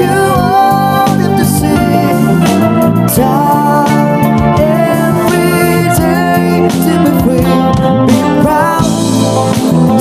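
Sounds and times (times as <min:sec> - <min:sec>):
live soft rock band: 0:00.0 - 0:10.0.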